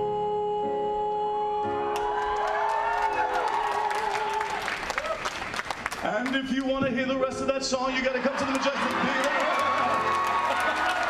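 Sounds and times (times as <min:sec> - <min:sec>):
man singing a long note: 0:00.0 - 0:02.0
audience applause and cheering: 0:02.0 - 0:06.8, 0:07.8 - 0:11.0.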